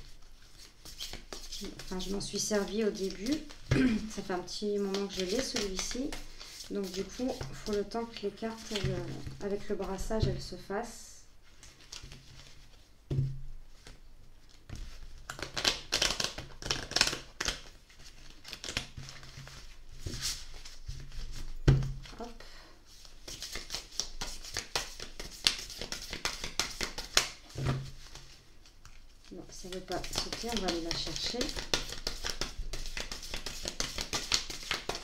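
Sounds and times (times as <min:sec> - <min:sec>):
cards shuffling: 0:00.4 - 0:02.1, 0:04.8 - 0:07.9, 0:13.8 - 0:19.6, 0:23.0 - 0:29.0, 0:29.6 - 0:35.0.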